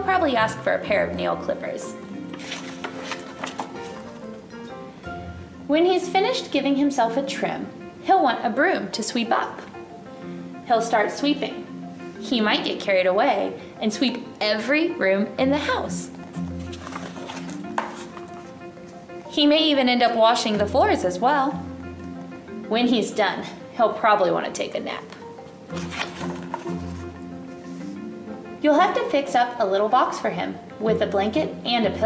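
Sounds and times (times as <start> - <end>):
soft background music: 0.0 - 32.0
paper page turning: 2.3 - 4.4, 16.5 - 18.5, 25.7 - 27.1.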